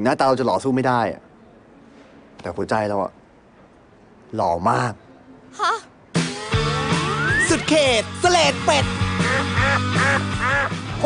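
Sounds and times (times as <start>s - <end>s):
background music: 5.9s - 11.0s
duck quacks: 9.2s - 10.7s.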